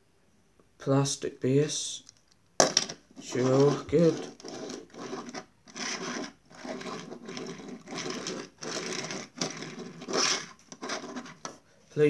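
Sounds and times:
toy car rolling on wooden table: 0:02.6 - 0:11.6.

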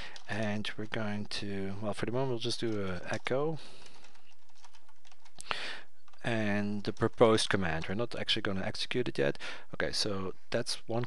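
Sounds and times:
keyboard typing: 0:00.0 - 0:08.2
short breath: 0:05.4 - 0:05.9, 0:09.4 - 0:09.7.

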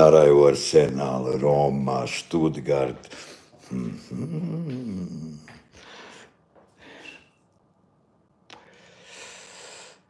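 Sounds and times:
man humming: 0:03.6 - 0:05.7.

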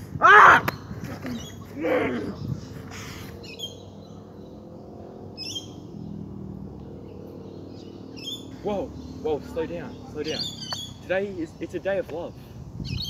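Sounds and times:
high bird chirps: 0:02.4 - 0:06.2, 0:07.0 - 0:12.0.

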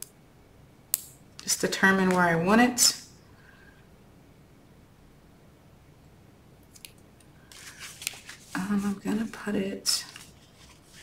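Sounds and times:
cardstock rustling: 0:07.5 - 0:11.0.

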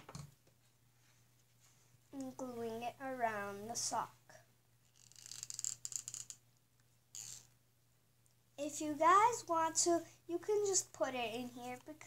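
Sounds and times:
glue gun scratchy crackle: 0:04.9 - 0:06.4.

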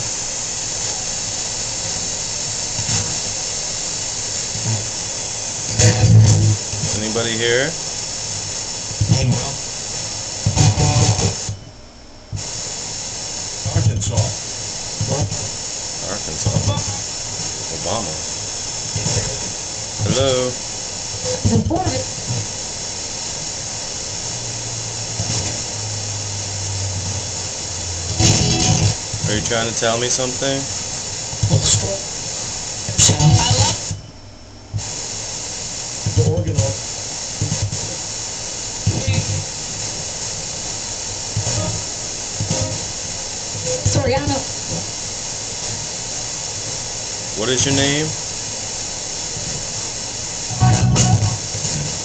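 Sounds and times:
static hiss: 0:00.0 - 0:52.0
choppy radio fragments: 0:02.1 - 0:03.5, 0:04.4 - 0:07.8, 0:08.9 - 0:11.6, 0:13.6 - 0:22.6, 0:25.2 - 0:25.7, 0:28.1 - 0:34.0, 0:36.0 - 0:38.1, 0:38.8 - 0:40.1, 0:41.3 - 0:45.0, 0:50.5 - 0:52.0
brief broadcast voices: 0:05.7 - 0:07.8, 0:09.0 - 0:09.6, 0:18.9 - 0:20.6, 0:32.9 - 0:34.0, 0:38.8 - 0:39.5, 0:41.4 - 0:42.9.

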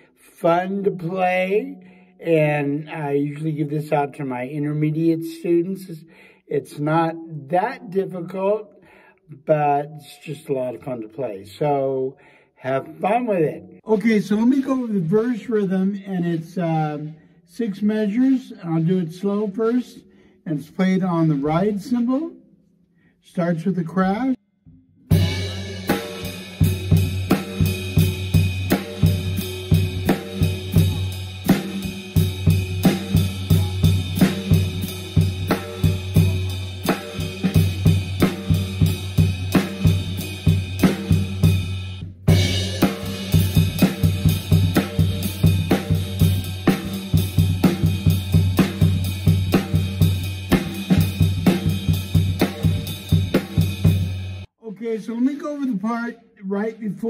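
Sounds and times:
drum kit groove: 0:25.1 - 0:54.5.

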